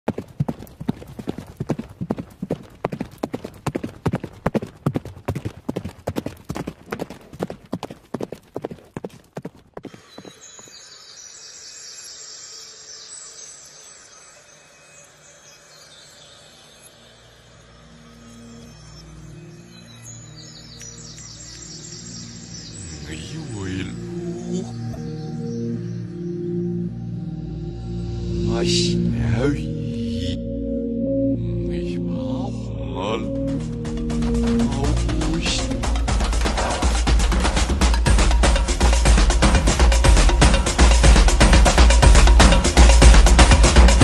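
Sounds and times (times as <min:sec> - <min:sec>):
horse hooves clip-clopping: 0:00.1 - 0:10.7
quiet music: 0:18.1 - 0:36.8.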